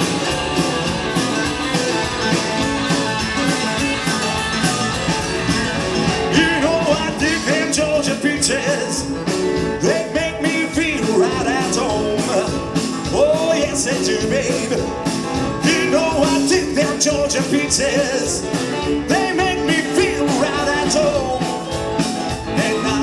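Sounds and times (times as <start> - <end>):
bass guitar: 0.0 - 23.0
drum kit: 0.0 - 23.0
electric guitars: 0.0 - 23.0
person singing: 6.1 - 21.8, 22.4 - 23.0.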